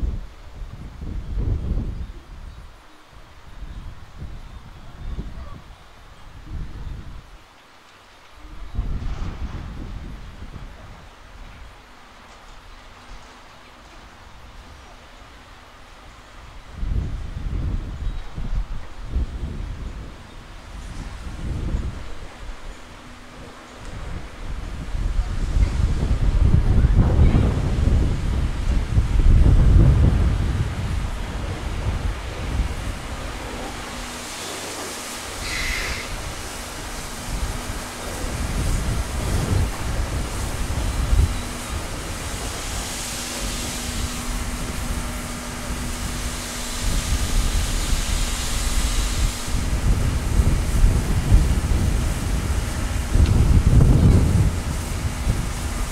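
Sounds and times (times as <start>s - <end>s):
wind rumbling on microphone: 0.0s - 7.5s, 8.3s - 55.9s
steam locomotive rolling: 0.0s - 55.9s
steam hissing: 8.3s - 55.9s
steady low hum: 14.2s - 55.9s.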